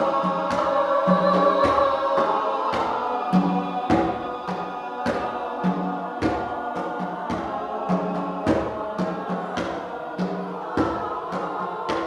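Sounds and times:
mixed choir singing in harmony: 0.0s - 12.0s.

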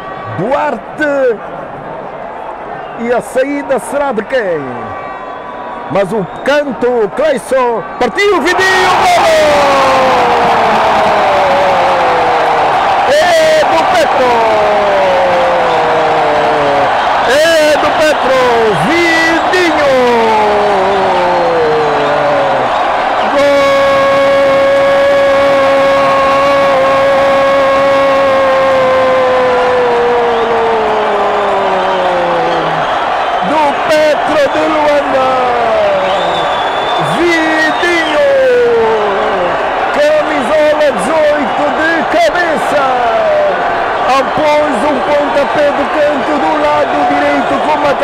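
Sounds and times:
man shouting goal: 6.0s - 48.0s
man shouting excitedly: 6.8s - 32.8s, 33.4s - 36.4s, 37.0s - 48.0s.

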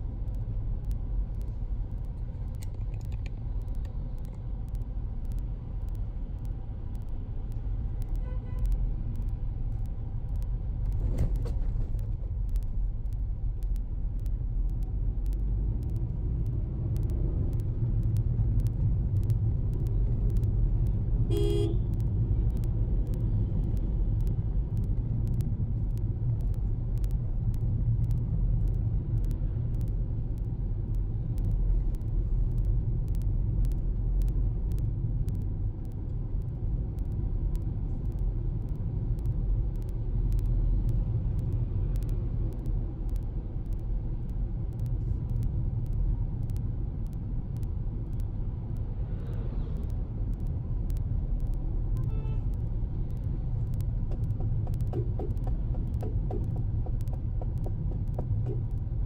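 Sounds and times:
car engine and tyres rumbling: 0.0s - 59.0s
car horn toot: 21.3s - 21.8s.

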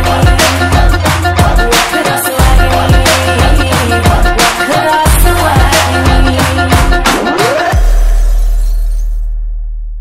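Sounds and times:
deep bass boom: 7.8s - 10.0s.

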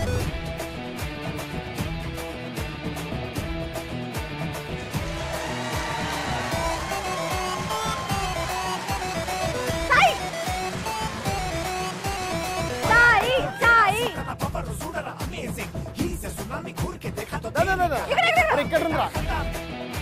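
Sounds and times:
music with a steady beat: 0.0s - 20.0s
person shouting: 12.8s - 14.4s.

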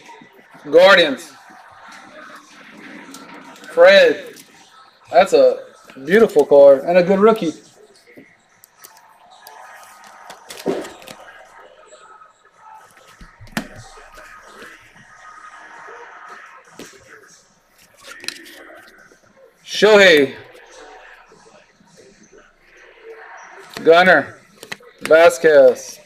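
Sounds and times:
cards and plastic sleeves rustling: 5.8s - 7.5s, 8.1s - 11.7s, 12.8s - 15.2s, 16.7s - 19.2s, 23.6s - 26.0s.

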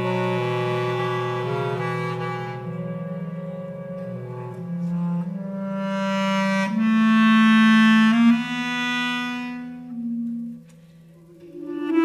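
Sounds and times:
bass clarinet low notes: 0.0s - 12.0s.

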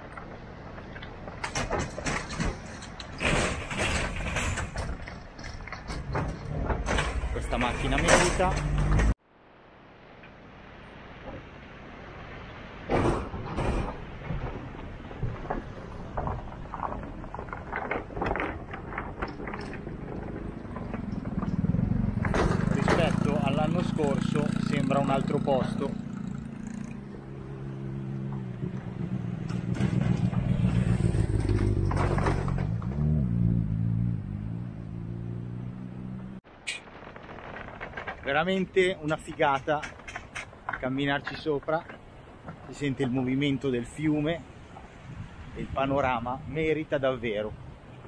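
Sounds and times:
steel deck plates clanking: 1.2s - 9.2s
vehicle engine passing slowly: 19.3s - 36.4s.

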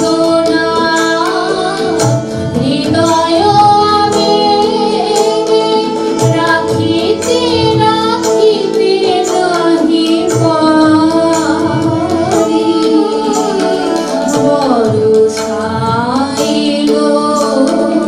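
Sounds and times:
harmonium reed notes: 0.0s - 18.0s
women singing: 0.0s - 18.0s.

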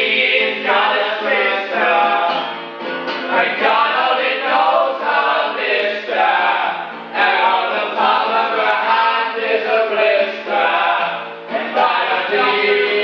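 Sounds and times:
men singing together: 0.0s - 2.6s, 3.2s - 13.0s
strummed acoustic guitar: 0.0s - 13.0s.

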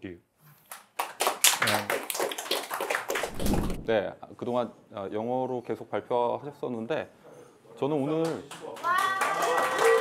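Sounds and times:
audience applauding: 1.0s - 3.4s, 8.8s - 10.0s.

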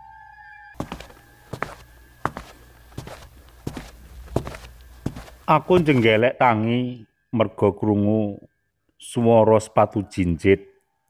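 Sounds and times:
eerie music tone: 0.0s - 8.5s
high heels clicking on tiles: 0.8s - 6.2s.

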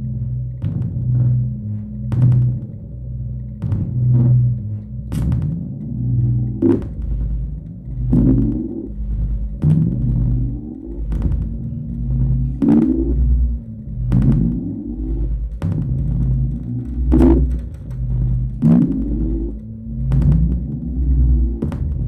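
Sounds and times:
deep electronic drone: 0.0s - 22.0s.

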